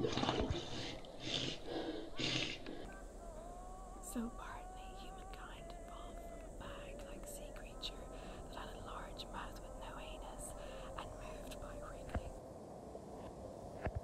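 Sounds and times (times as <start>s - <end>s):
faint whispered voice: 2.8s - 12.4s
low wavering tone: 2.8s - 12.4s.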